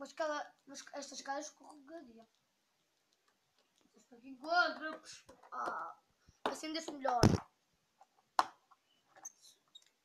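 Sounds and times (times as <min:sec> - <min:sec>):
faint clicks and rustles: 0:01.4 - 0:10.0
plastic toy tap: 0:04.7 - 0:07.5, 0:08.4 - 0:08.6.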